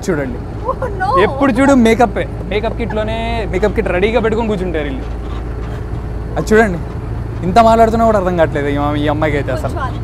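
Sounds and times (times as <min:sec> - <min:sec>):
bus engine rumble and road noise: 0:00.0 - 0:10.0.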